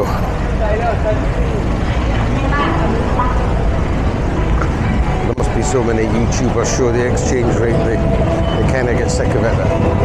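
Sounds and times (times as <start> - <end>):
cars and motorbikes passing: 0.0 - 10.0
low traffic rumble: 0.0 - 10.0
people talking: 0.0 - 10.0.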